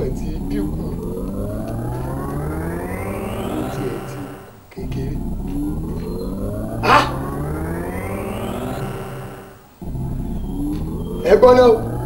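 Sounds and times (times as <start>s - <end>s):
low rumble: 0.0s - 12.0s
rising sweeping tones: 0.0s - 12.0s.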